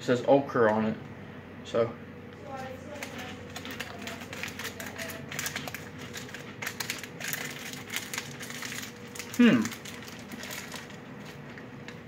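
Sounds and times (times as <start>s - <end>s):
chewing crisp cracker: 2.9s - 12.0s.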